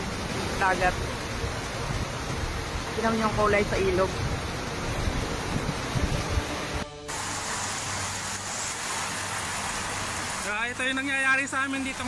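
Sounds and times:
heavy rain: 0.0s - 12.0s
wind rumbling on microphone: 1.2s - 6.8s.

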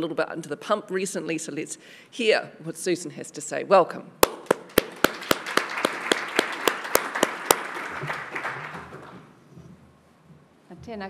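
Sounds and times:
sharp close claps: 4.2s - 9.3s
audience applauding: 4.2s - 9.4s.

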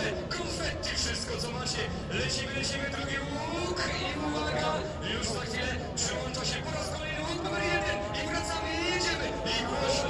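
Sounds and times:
crowd hubbub: 0.0s - 10.0s
announcer over loudspeakers: 5.8s - 10.0s.

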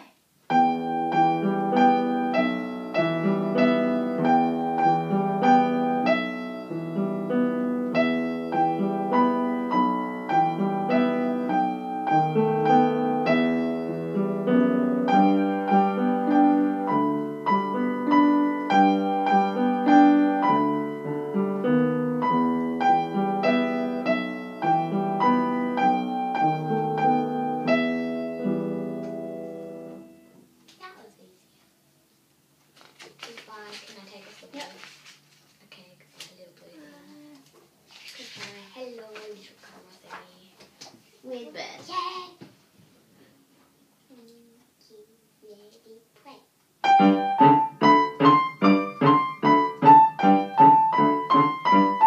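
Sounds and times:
piano duet: 0.5s - 30.6s, 46.8s - 52.0s.

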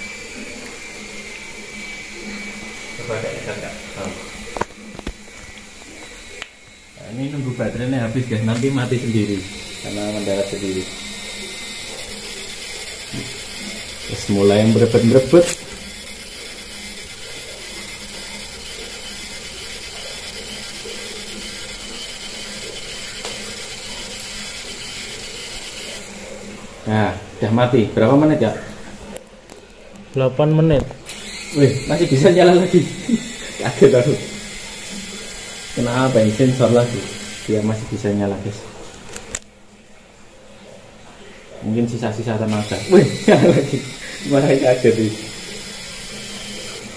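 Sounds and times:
toy helicopter motor whirring: 0.0s - 27.0s, 31.0s - 38.4s, 42.4s - 46.9s.

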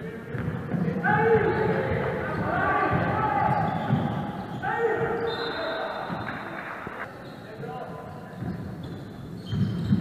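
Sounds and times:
basketball dribbling on wooden floor: 8.4s - 10.0s.

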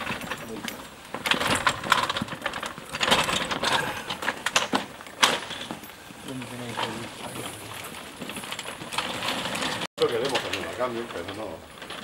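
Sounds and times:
metal trolley rattling over paving: 0.0s - 12.0s.

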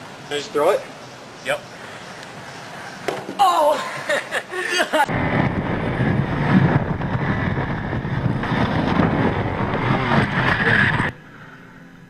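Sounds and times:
wind noise on microphone: 5.1s - 11.2s.

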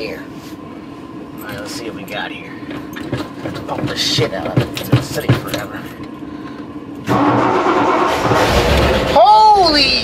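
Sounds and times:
car engine starting: 6.9s - 10.0s.

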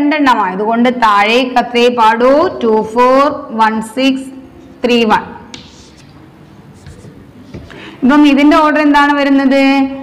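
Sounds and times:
chalk scratching on chalkboard: 5.5s - 7.7s.

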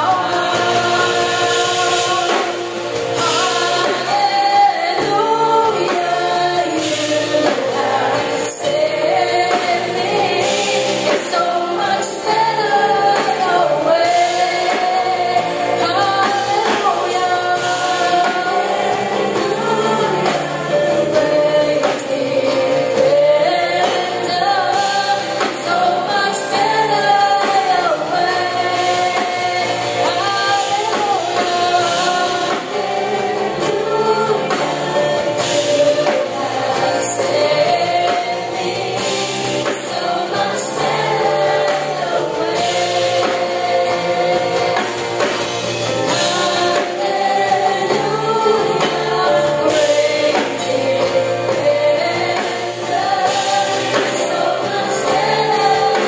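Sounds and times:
group singing worship song: 0.0s - 56.0s.

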